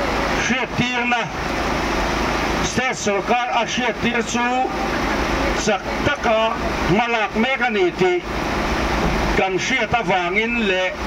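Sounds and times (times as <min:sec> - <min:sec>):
man speaking through loudspeaker: 0:00.0 - 0:01.4, 0:02.6 - 0:08.3, 0:09.3 - 0:11.0
steady background noise: 0:00.0 - 0:11.0.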